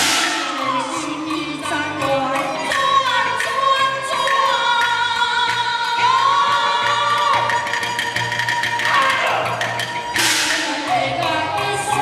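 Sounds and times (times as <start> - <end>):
rapid percussion strikes: 0.0 - 12.0
loud cymbal crash: 10.2 - 11.0.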